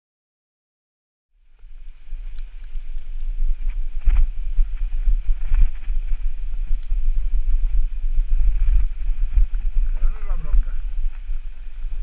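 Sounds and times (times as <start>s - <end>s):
bike tyres rolling on gravel: 1.4s - 12.0s
wind buffeting microphone: 1.4s - 12.0s.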